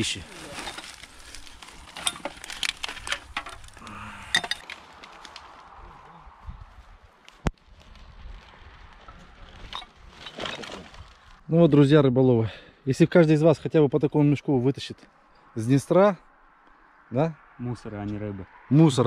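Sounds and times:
litter rustling in undergrowth: 0:00.0 - 0:03.8.

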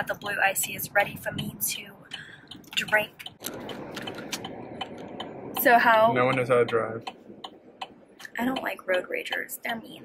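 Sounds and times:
car road and cabin noise: 0:00.0 - 0:10.0
light ticks: 0:01.4 - 0:09.5.

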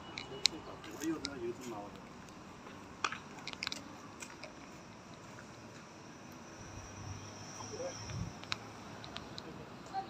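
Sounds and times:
faint background noise: 0:00.0 - 0:10.0
sharp clicks and crunches: 0:00.1 - 0:02.4, 0:03.0 - 0:04.6, 0:08.0 - 0:09.5.

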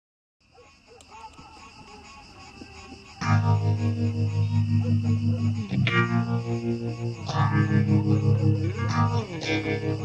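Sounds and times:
distorted electric guitar chord: 0:03.2 - 0:10.0.

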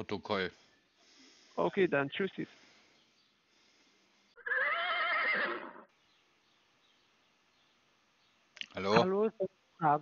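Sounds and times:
horse whinnying: 0:04.4 - 0:05.9.

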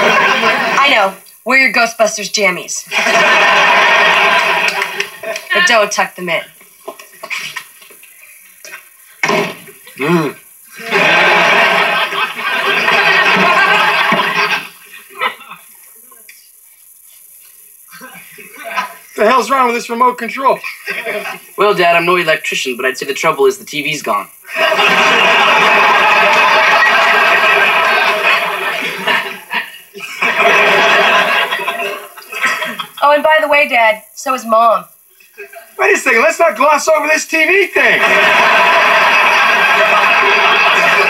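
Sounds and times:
studio audience laughing on television: 0:00.0 - 0:00.9, 0:02.9 - 0:05.6, 0:10.7 - 0:15.7, 0:18.3 - 0:19.2, 0:20.6 - 0:21.6, 0:24.4 - 0:33.0, 0:37.8 - 0:41.0.

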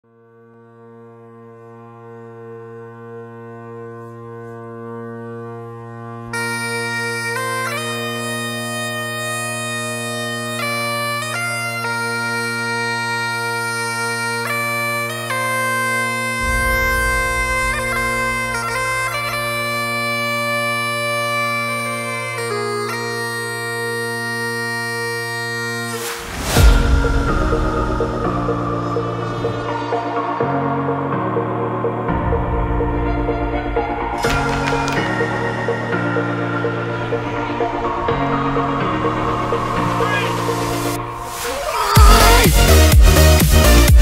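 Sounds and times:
bagpipes playing: 0:00.6 - 0:26.1
deep low rumble: 0:16.3 - 0:20.1.

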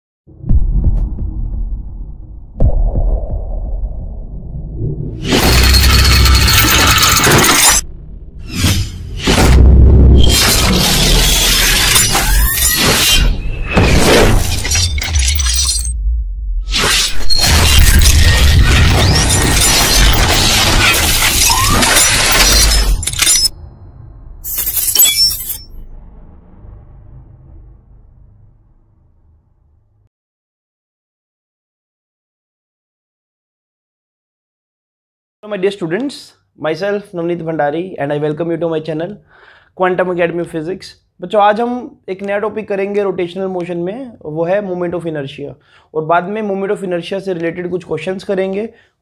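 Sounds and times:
deep low hits with rumble: 0:00.3 - 0:05.3, 0:07.8 - 0:10.3, 0:25.8 - 0:30.0
glass shattering: 0:05.2 - 0:07.8, 0:10.2 - 0:15.9, 0:16.8 - 0:23.6, 0:24.4 - 0:25.8.

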